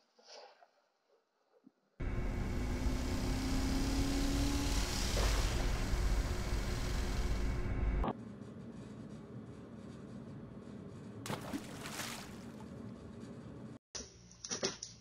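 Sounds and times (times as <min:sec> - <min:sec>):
pickup truck engine revving: 0:02.0 - 0:08.0.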